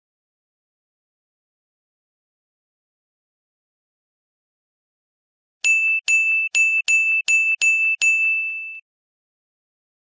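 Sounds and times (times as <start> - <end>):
bright electronic ding: 5.7 - 8.8.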